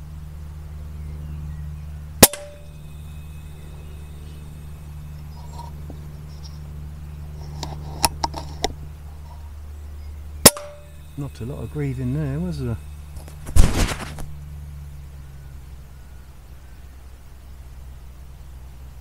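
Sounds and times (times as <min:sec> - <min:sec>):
steady low hum: 0:00.0 - 0:19.0
air rifle shot: 0:02.2 - 0:02.8, 0:10.4 - 0:10.8.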